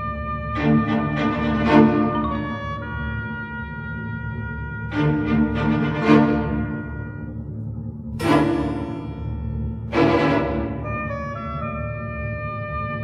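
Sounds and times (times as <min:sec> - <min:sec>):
orchestral chords: 0:00.0 - 0:13.0.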